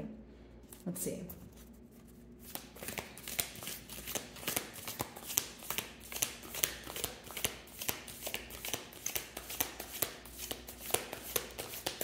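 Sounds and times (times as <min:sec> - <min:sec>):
cards being hand-shuffled: 0:00.6 - 0:12.0.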